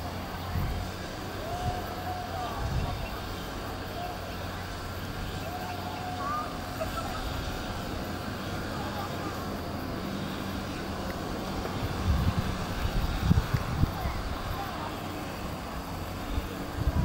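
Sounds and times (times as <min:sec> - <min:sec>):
faint distant voices: 0:00.0 - 0:17.0
steady low hum: 0:00.0 - 0:17.0.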